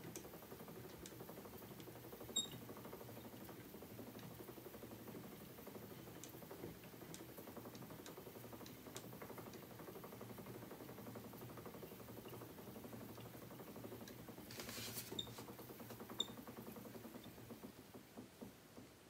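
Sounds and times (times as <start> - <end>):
spinning wheel whirring: 0.0 - 19.0.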